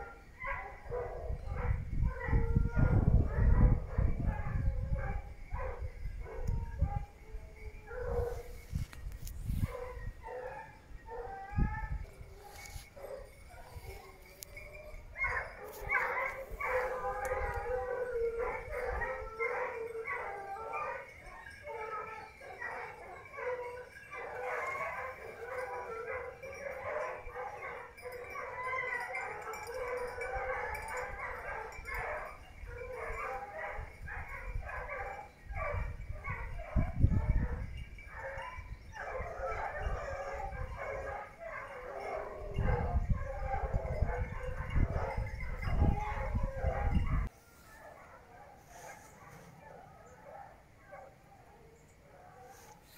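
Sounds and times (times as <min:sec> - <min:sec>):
hunting dogs baying: 0:00.0 - 0:08.9, 0:09.5 - 0:52.9.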